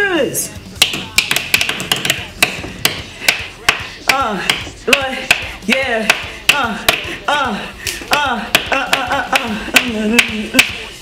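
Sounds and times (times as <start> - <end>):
pens tapping on a desk: 0.8 - 3.8.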